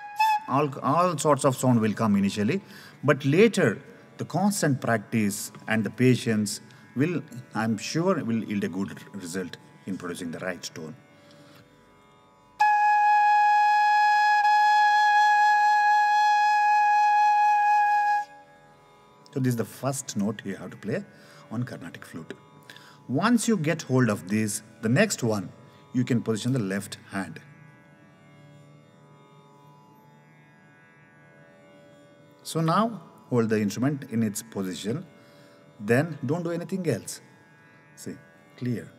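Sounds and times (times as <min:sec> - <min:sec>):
bamboo flute long note: 0:00.0 - 0:01.2, 0:12.6 - 0:18.5.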